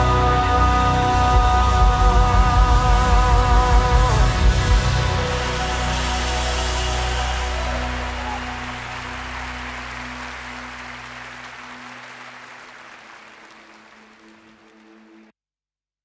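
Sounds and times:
theme music with held tones: 0.0 - 15.3.

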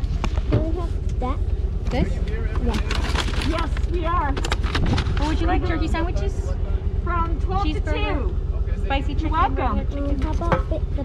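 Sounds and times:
steady low rumble: 0.0 - 11.0
voices: 0.0 - 11.0
plastic cups and paper bags handled: 2.6 - 5.5.

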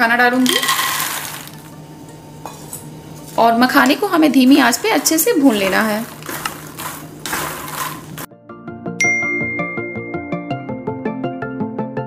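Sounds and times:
spatula stirring dry nuts: 0.5 - 1.6, 3.8 - 8.3.

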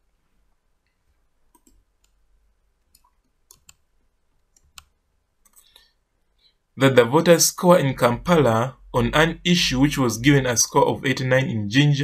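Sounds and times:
faint computer mouse clicks: 0.8 - 2.2, 2.9 - 3.8, 4.4 - 5.9.

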